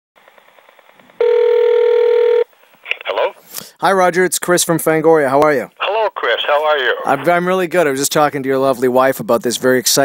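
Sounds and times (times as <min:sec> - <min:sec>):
telephone ring tone: 0:01.2 - 0:02.5
voice on telephone line: 0:01.2 - 0:03.4, 0:05.8 - 0:07.4.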